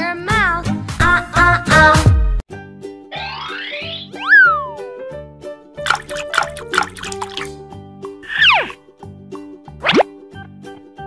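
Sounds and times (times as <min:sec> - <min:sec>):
cartoon falling swoop: 0:03.1 - 0:04.9
cartoon rising swoop: 0:03.1 - 0:04.9.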